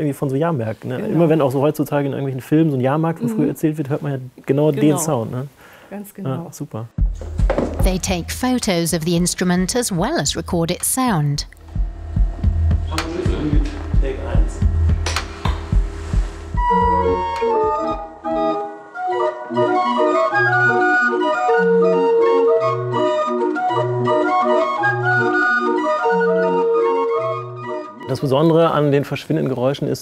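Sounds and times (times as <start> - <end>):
knocks and handling noises: 7.2 - 7.9
barrel organ playing a tune: 8.9 - 28.5
low rumble: 11.4 - 17.4.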